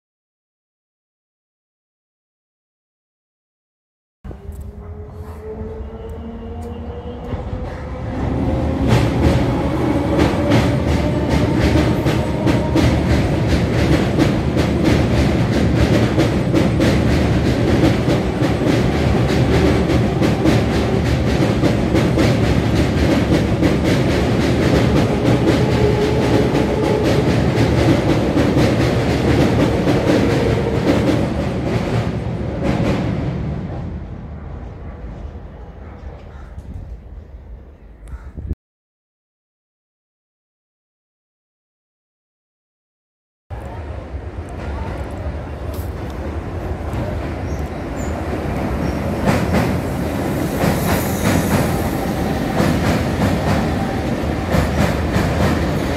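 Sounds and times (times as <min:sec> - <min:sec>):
train rumbling over steel bridge: 0:04.3 - 0:38.6, 0:43.5 - 0:55.9.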